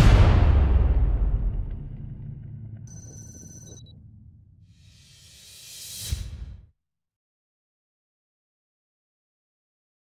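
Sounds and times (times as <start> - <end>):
low boom tail: 0.0 - 2.9
high electronic tone: 2.9 - 4.0.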